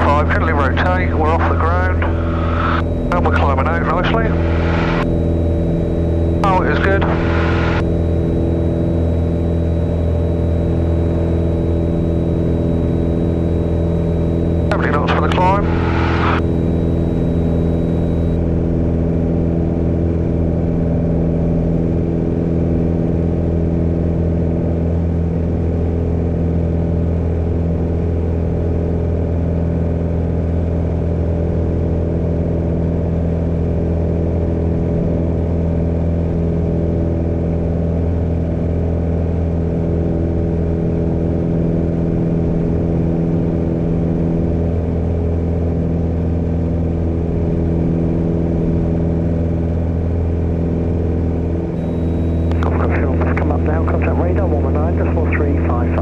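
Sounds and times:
aircraft engine and propeller drone: 0.0 - 56.0.

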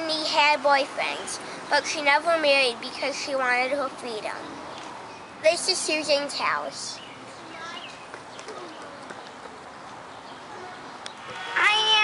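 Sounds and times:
young boy speaking: 0.0 - 4.6, 5.4 - 8.8, 11.6 - 12.0
faint outdoor background: 0.0 - 12.0.

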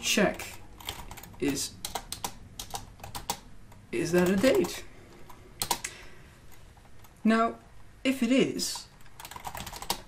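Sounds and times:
computer keyboard keys clicking: 0.3 - 5.9, 8.8 - 10.0.

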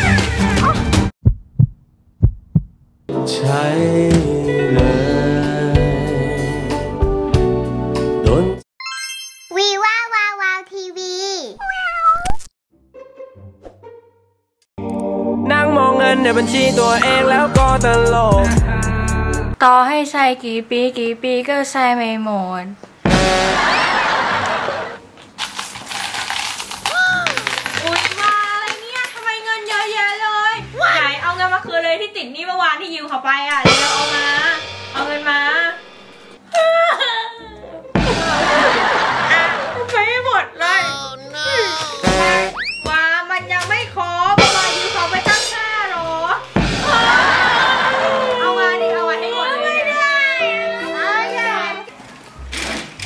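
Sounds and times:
heartbeat thumps: 1.2 - 3.0
coins clinking onto a table: 25.7 - 30.2.

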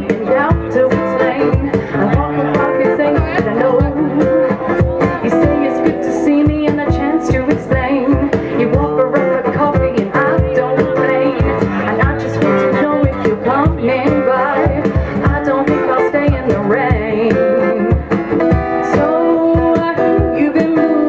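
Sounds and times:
strummed guitar: 0.0 - 21.0
woman singing: 0.0 - 21.0.

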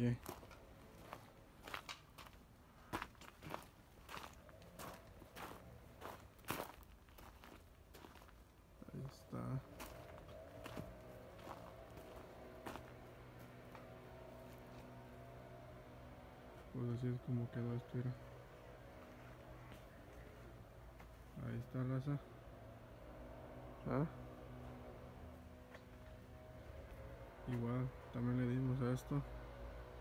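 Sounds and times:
steady low hum: 0.0 - 30.0
footsteps on gravel: 0.1 - 15.0.

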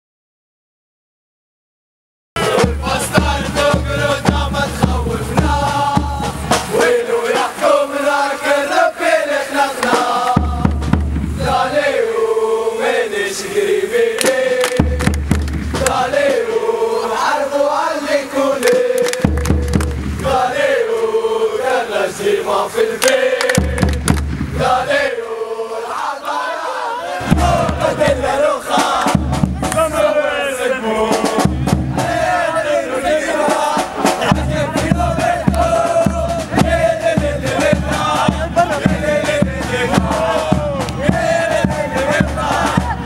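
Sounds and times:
crowd chanting in unison: 2.4 - 43.0
deep bass: 14.9 - 15.9, 19.3 - 20.3, 23.6 - 24.6.

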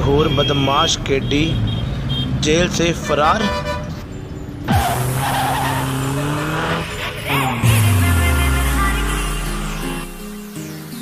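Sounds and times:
tyres skidding: 2.7 - 10.0
car engine running: 4.7 - 10.3.

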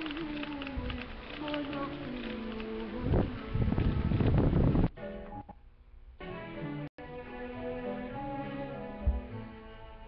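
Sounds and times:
wind buffeting microphone: 2.9 - 4.9.

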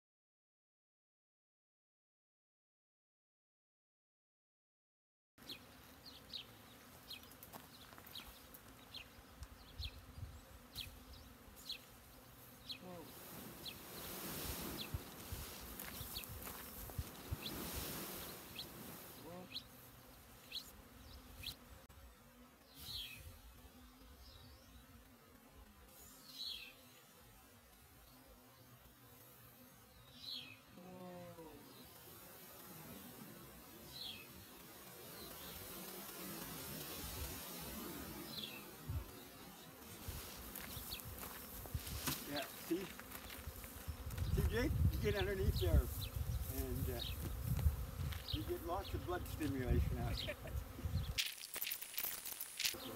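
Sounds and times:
bee swarm buzzing: 5.4 - 52.9
bees droning past: 5.4 - 52.9.

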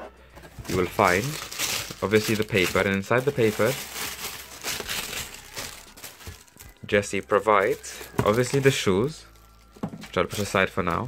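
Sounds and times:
paper rustling and crinkling: 0.4 - 11.0
man talking: 0.6 - 1.4, 2.0 - 3.8, 6.8 - 9.3, 10.1 - 11.0.

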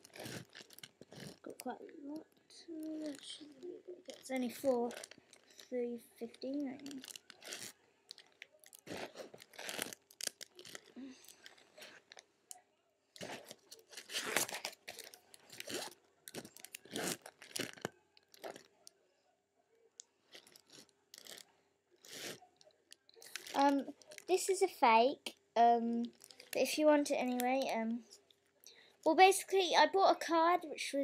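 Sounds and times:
plastic sleeve pages crinkling: 0.0 - 12.3, 13.2 - 18.8, 20.3 - 21.5, 23.2 - 24.8, 26.0 - 27.8.

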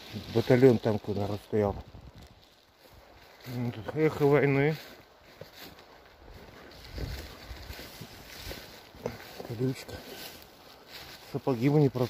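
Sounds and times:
plants rustling underfoot: 0.0 - 12.0.

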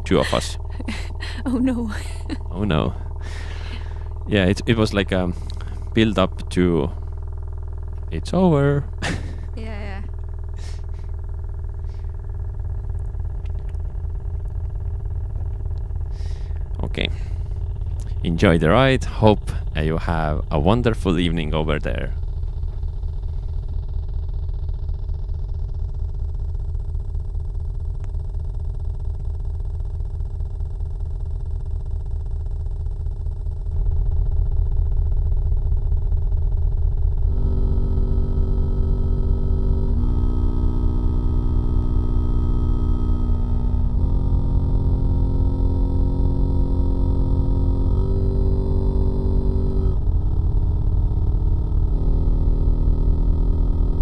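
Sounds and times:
fast synth bass pulse: 0.0 - 54.0
held synth chords: 37.3 - 54.0.

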